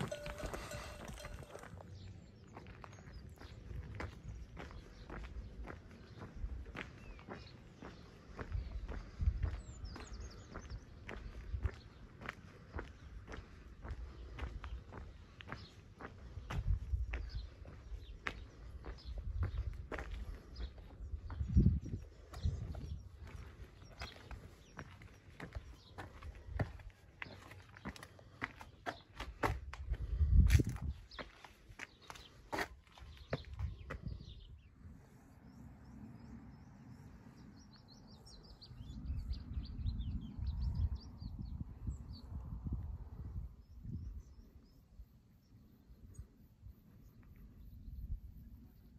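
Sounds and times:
footsteps on stone path: 0.0 - 34.4.

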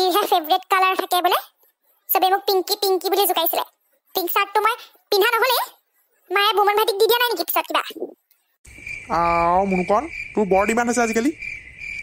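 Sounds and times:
crickets chirping: 8.6 - 12.0.

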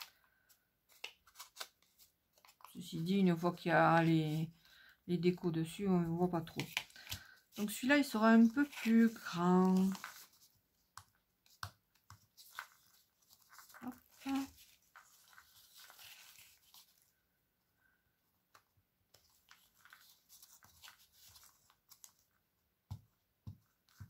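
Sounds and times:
paper rustling and scraping: 0.0 - 3.4, 6.4 - 10.6, 11.5 - 17.1, 19.1 - 22.3.

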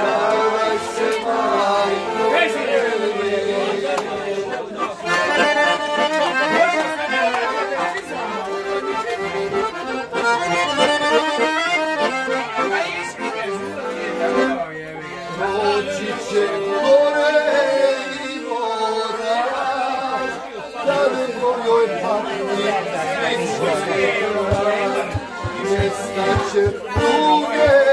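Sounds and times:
accordion playing folk tune: 0.0 - 27.9.

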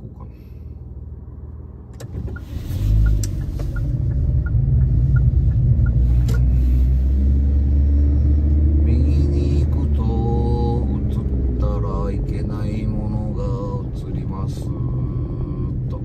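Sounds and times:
engine and road rumble: 0.0 - 16.0
turn signal ticking: 2.0 - 6.6.

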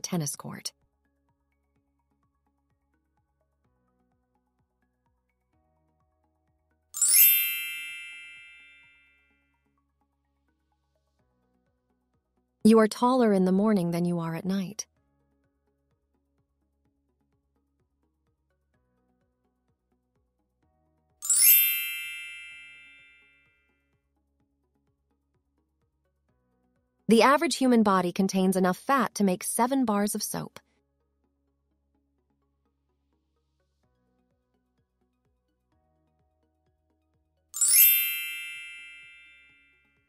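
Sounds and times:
bell-like chime: 7.0 - 9.3, 21.2 - 23.5, 37.6 - 40.0.

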